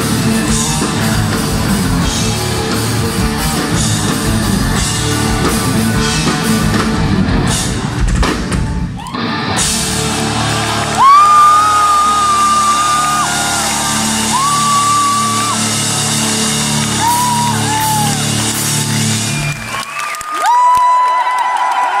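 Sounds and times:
audience cheering: 9.0 - 22.0.

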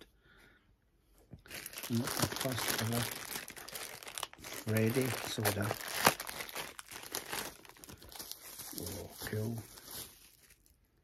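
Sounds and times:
plastic bag crinkling: 1.4 - 10.8.

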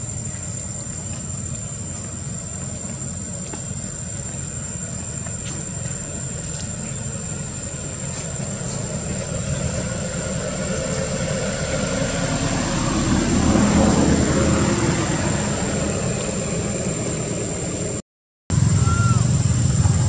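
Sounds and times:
vehicle motor rumble passing: 0.0 - 20.0
thin high whine: 15.2 - 20.0.

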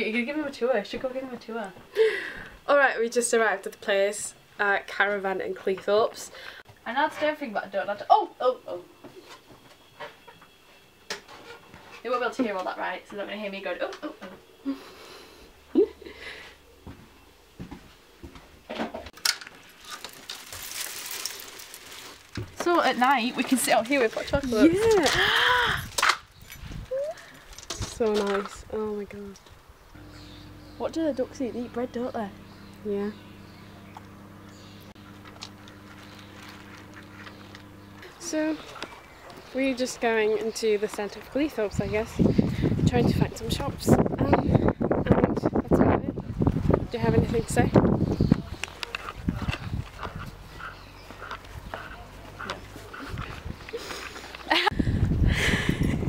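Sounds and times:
low hum: 29.9 - 40.2.

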